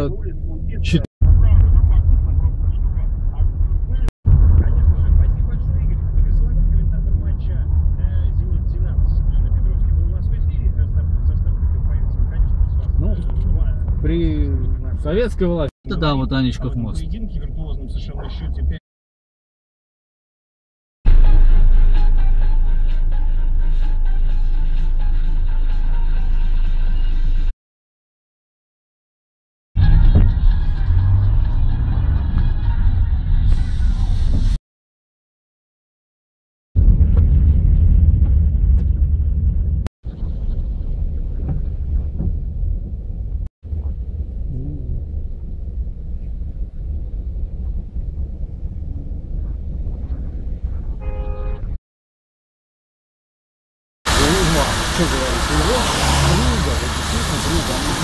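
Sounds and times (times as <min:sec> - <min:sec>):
car engine and road rumble: 0:00.0 - 0:18.8, 0:29.8 - 0:34.6, 0:36.8 - 0:51.8, 0:54.1 - 0:58.0
music playing: 0:21.1 - 0:27.5
car horn: 0:51.0 - 0:51.8.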